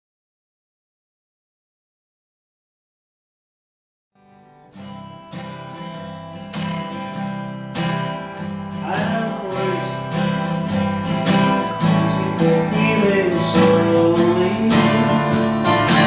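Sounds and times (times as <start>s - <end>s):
acoustic guitar strumming: 4.2s - 16.0s.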